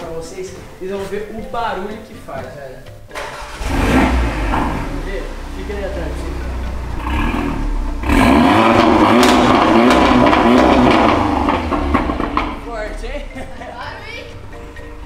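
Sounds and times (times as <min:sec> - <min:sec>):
car engine idling and revving: 0:03.2 - 0:15.0.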